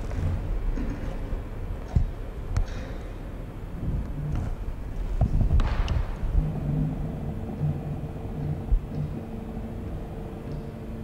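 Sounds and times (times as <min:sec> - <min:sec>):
faint steady hum: 0:00.0 - 0:11.0
low steady rumble: 0:00.0 - 0:11.0.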